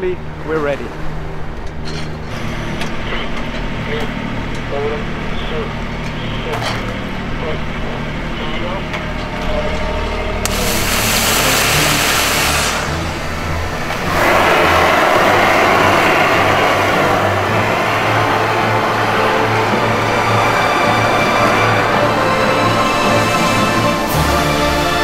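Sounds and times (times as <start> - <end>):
high hiss: 10.4 - 17.2
loud steady rushing: 10.5 - 24.3.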